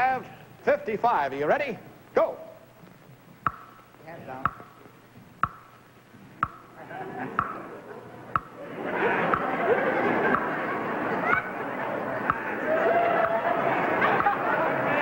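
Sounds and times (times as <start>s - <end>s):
countdown clock ticking: 3.4s - 4.8s, 5.4s - 5.8s, 6.4s - 6.8s, 7.4s - 7.6s, 8.3s - 8.6s, 10.3s - 10.5s, 12.3s - 12.5s
studio audience noise: 6.6s - 15.0s.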